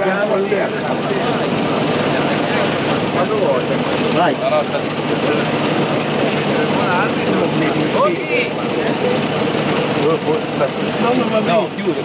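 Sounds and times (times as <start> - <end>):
car engines idling: 0.0 - 12.0
people talking: 0.0 - 12.0.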